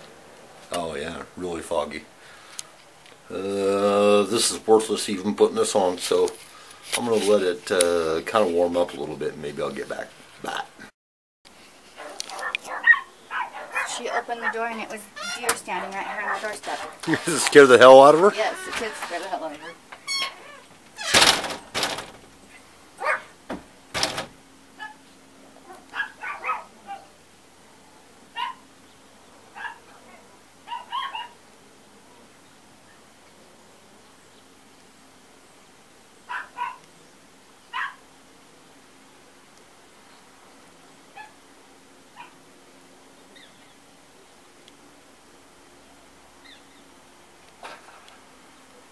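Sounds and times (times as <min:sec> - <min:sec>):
dog barking high barks: 0:12.0 - 0:14.1, 0:23.0 - 0:23.4, 0:24.8 - 0:25.0, 0:25.6 - 0:27.2, 0:28.3 - 0:28.6, 0:29.5 - 0:31.4, 0:36.3 - 0:36.8, 0:37.7 - 0:38.0, 0:41.1 - 0:41.4, 0:42.2 - 0:42.4.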